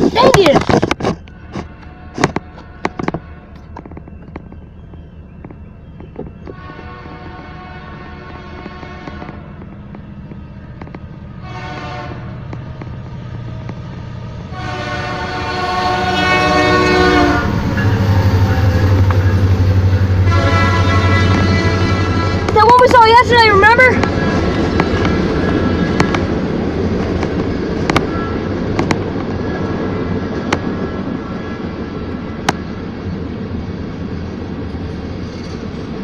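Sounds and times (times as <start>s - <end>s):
locomotive heavy low rumble: 0.0s - 36.0s
locomotive air horn blasts: 1.4s - 3.6s, 6.5s - 9.6s, 11.4s - 12.4s, 14.5s - 19.4s, 20.1s - 22.8s, 28.0s - 28.5s.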